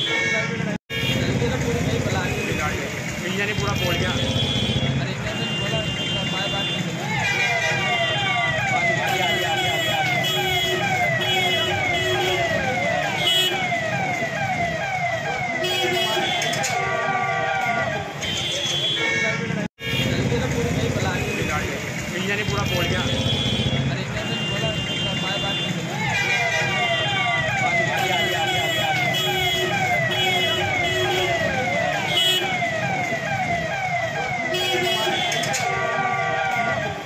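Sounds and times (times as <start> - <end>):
street traffic: 0.0 - 37.0
voices: 0.0 - 37.0
siren yelping: 3.4 - 18.8, 25.0 - 37.0.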